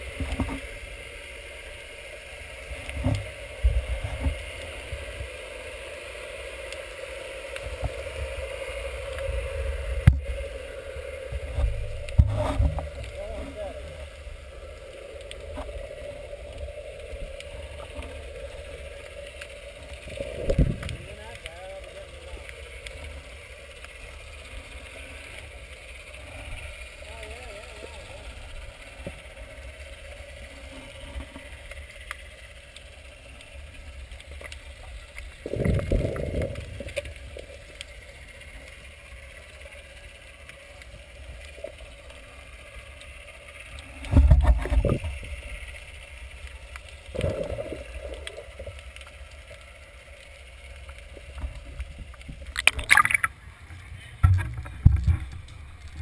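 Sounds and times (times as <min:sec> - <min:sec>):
underwater thumps and swishes: 0:00.0 - 0:00.8, 0:02.7 - 0:05.3, 0:09.9 - 0:10.4, 0:11.2 - 0:14.0, 0:19.9 - 0:21.1, 0:35.2 - 0:37.4, 0:44.0 - 0:45.3, 0:51.0 - 0:53.6, 0:54.2 - 0:56.0
muffled underwater rumble: 0:00.0 - 0:56.0
warbling tone: 0:52.6 - 0:53.4.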